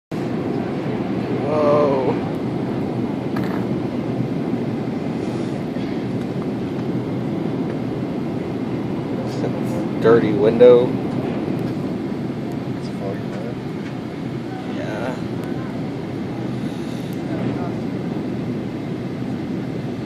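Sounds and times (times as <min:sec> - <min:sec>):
airliner cabin engine rumble: 0:00.1 - 0:20.0.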